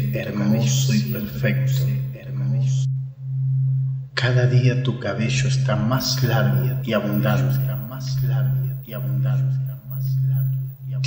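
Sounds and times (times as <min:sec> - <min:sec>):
steady low pure tone: 0:00.0 - 0:11.0.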